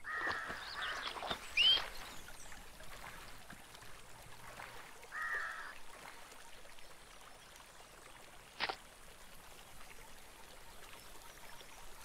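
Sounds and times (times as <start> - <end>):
outdoor ambience: 0.0 - 12.0.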